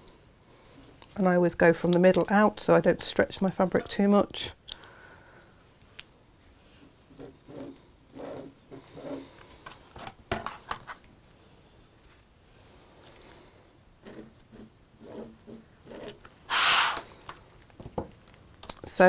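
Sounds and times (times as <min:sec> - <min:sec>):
fabric pen rubbing on fabric: 0:14.1 - 0:17.1
ruler scraping across mat: 0:16.5 - 0:17.1.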